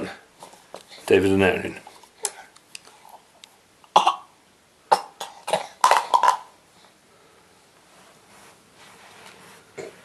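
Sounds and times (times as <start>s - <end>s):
baby coughing: 3.9s - 6.5s.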